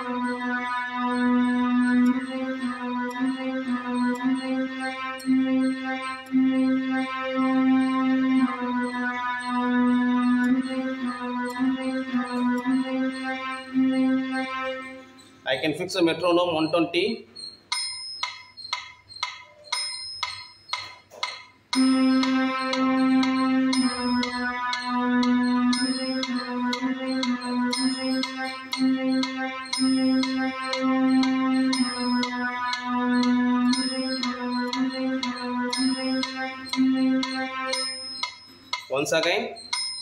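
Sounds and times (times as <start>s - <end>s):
metronome clicking: 0.0s - 14.6s, 16.2s - 40.0s
electronic keyboard low notes: 0.0s - 17.5s, 18.6s - 39.7s.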